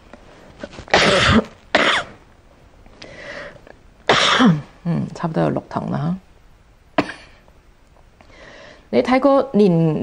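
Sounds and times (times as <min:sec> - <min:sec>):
woman coughing: 0:00.9 - 0:02.2, 0:04.1 - 0:04.7, 0:07.0 - 0:07.4.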